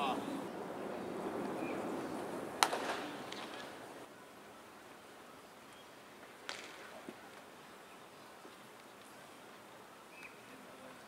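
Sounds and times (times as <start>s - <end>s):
quiet ballpark ambience: 0.0s - 11.0s.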